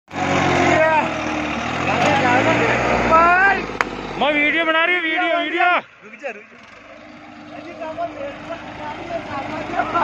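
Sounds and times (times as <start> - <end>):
tractor diesel engine running: 0.1 - 10.0
people's voices: 0.5 - 10.0.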